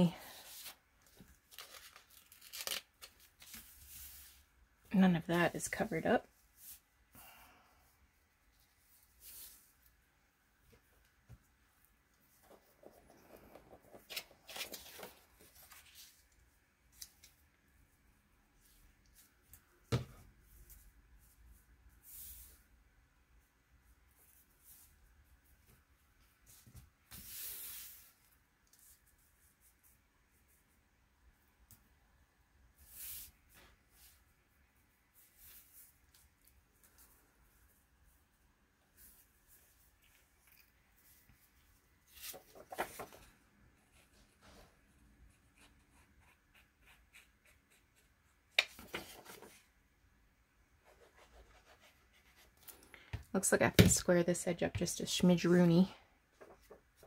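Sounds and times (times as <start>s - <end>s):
paper rustling and rubbing: 42.0s - 43.3s.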